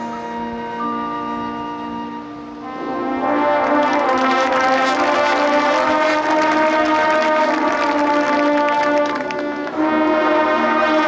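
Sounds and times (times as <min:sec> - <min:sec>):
marching band brass chords: 0:02.0 - 0:11.0.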